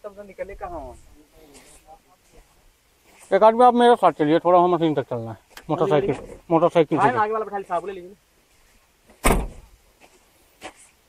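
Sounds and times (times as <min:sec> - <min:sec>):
loud thump: 0:09.1 - 0:09.7.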